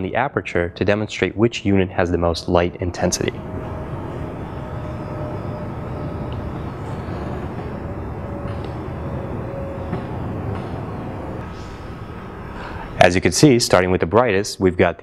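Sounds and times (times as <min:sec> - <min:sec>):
low rumble and hiss: 0:00.0 - 0:15.0
faint wavering hum: 0:00.4 - 0:14.4.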